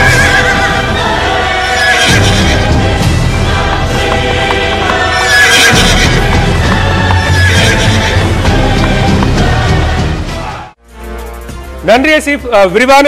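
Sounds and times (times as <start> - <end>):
loud music: 0.0 - 12.8
horse whinnies: 7.2 - 8.2.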